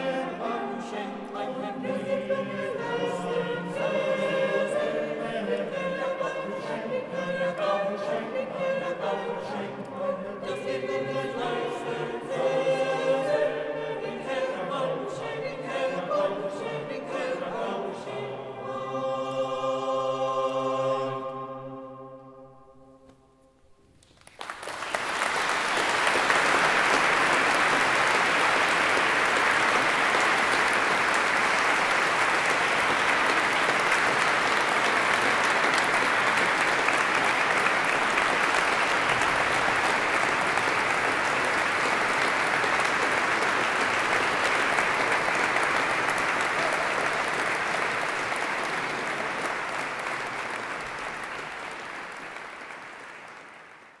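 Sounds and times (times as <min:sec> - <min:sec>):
audience applauding: 0:24.0 - 0:54.0.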